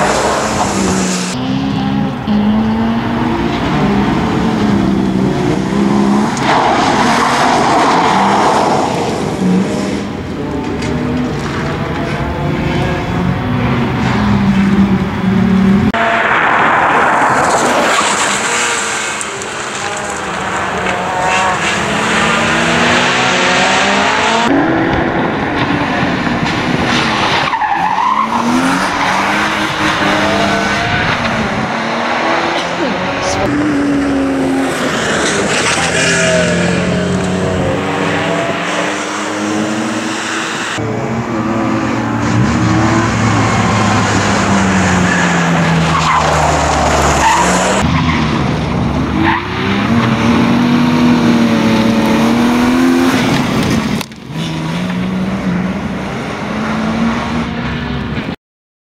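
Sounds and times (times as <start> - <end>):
car engine revving hard: 0.0 - 58.0
tyres squealing on tarmac: 42.7 - 48.3.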